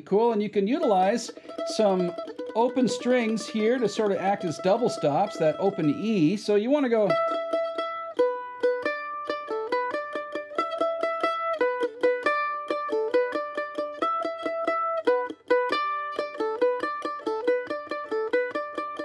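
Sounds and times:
mandolin melody picked: 0:00.0 - 0:19.0.

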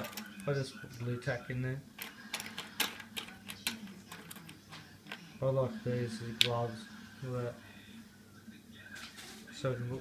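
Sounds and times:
plastic pieces clicking on table: 0:02.0 - 0:05.2.

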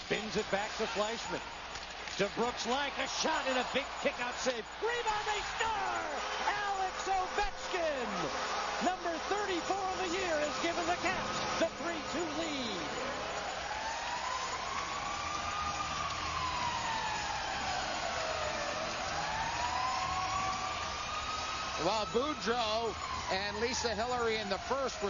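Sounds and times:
crowd noise: 0:00.0 - 0:23.8
wailing goal siren: 0:02.3 - 0:25.0
people shouting: 0:02.5 - 0:08.2.

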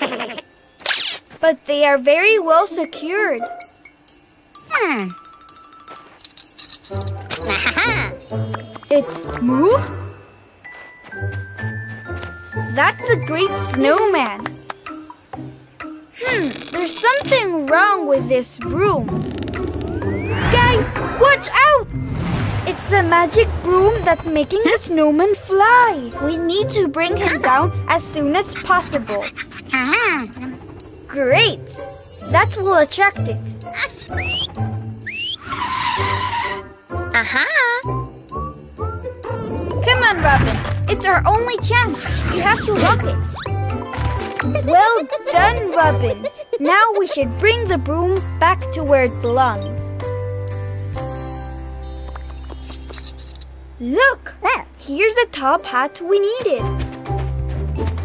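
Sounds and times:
cartoon background music: 0:00.0 - 0:58.0
short rising whistles: 0:19.9 - 0:21.0, 0:34.0 - 0:36.7
hissing whoosh: 0:28.0 - 0:34.2.

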